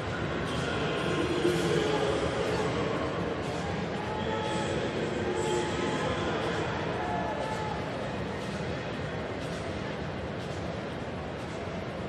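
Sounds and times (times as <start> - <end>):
stadium crowd hum: 0.0 - 12.0.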